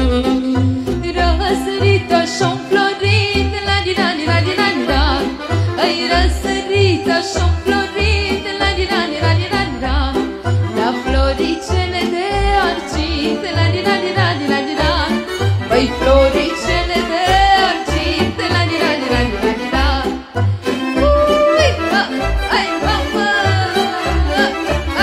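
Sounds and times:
live folk band music: 0.0 - 25.0.

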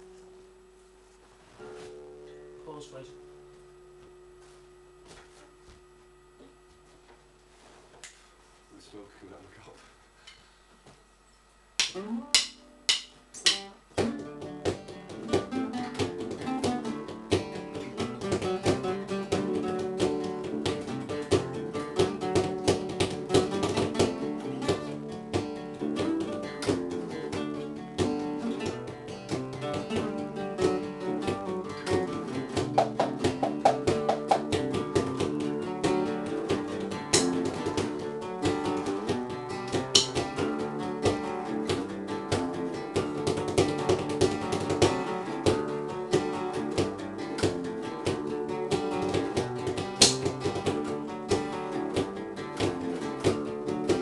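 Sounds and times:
acoustic guitars strumming: 0.0 - 8.6, 11.8 - 54.0.

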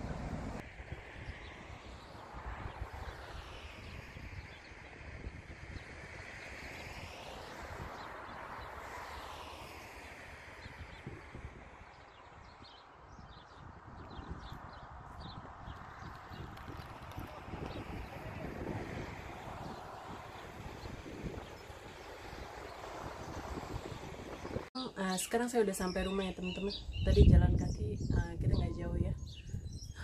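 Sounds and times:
passing vehicle hiss: 0.0 - 12.2, 17.4 - 24.7
wind buffeting microphone: 0.0 - 30.0.

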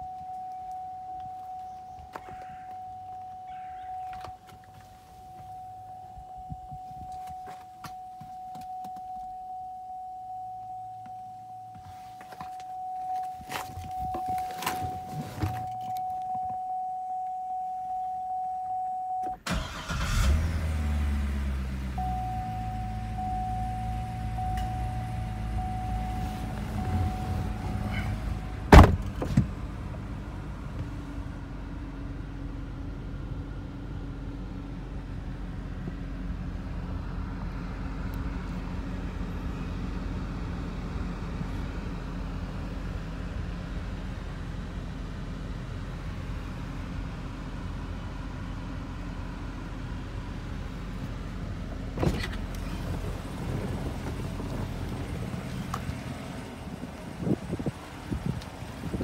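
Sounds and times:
car engine idling: 19.4 - 59.0.

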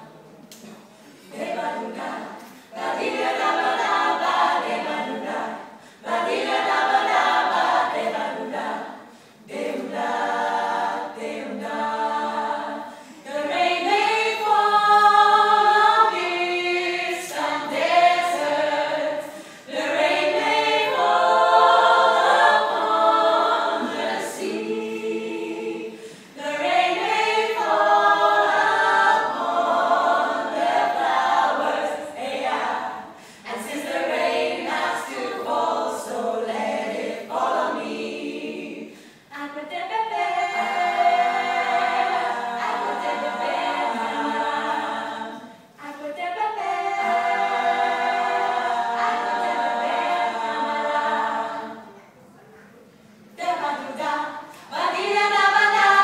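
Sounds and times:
a cappella group singing: 0.0 - 52.3, 52.9 - 56.0.

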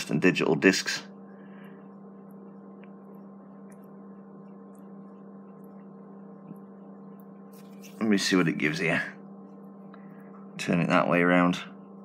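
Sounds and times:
faint steady tones: 0.0 - 12.0
steady low hum: 0.0 - 12.0.

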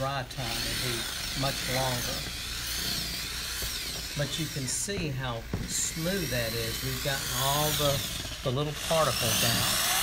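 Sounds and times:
electric drill motor whine: 0.0 - 10.0.

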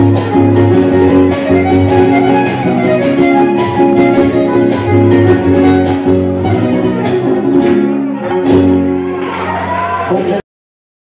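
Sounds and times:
violin melody: 0.0 - 9.2
strummed guitars: 0.0 - 10.4.

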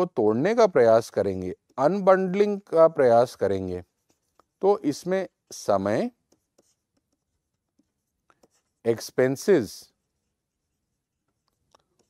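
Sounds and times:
stylus tapping on tablet screen: 6.2 - 8.8.

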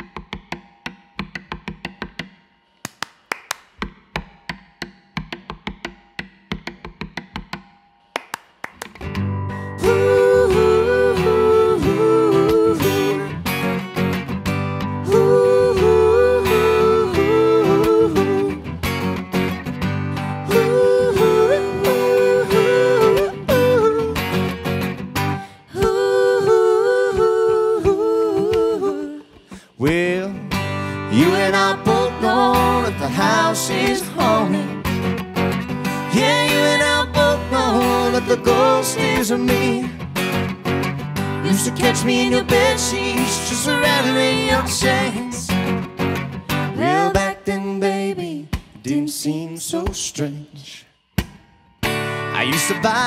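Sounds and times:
percussive acoustic guitar: 0.0 - 53.0
male and female voices singing: 9.6 - 13.7, 15.0 - 18.8, 20.2 - 24.5, 25.4 - 35.1, 35.8 - 40.0, 41.4 - 45.8, 46.6 - 50.8.

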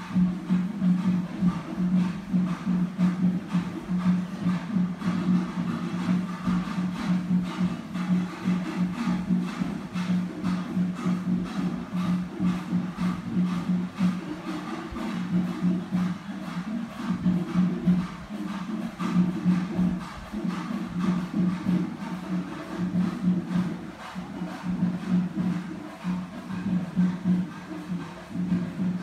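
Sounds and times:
music with fast beat: 0.0 - 29.0.

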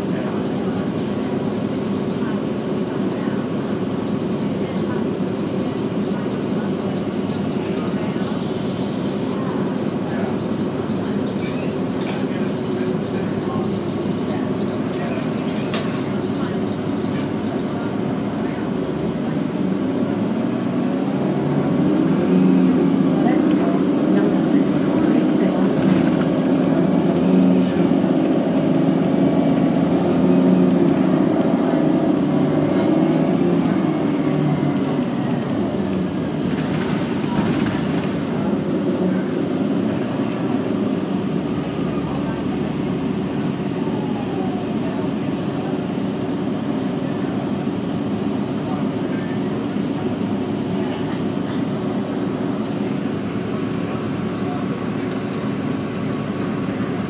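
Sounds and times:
bus drivetrain drone: 0.0 - 57.0
road noise: 0.0 - 57.0.

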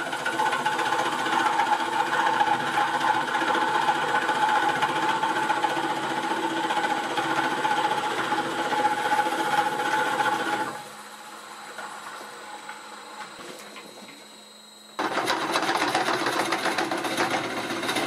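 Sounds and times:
drill boring into wood on lathe: 0.0 - 11.0, 15.0 - 18.0.

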